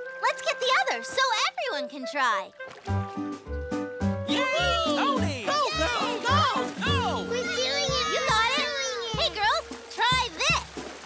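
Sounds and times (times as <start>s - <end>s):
upbeat cartoon music: 0.0s - 10.8s
cartoon voices cheering: 4.3s - 9.3s.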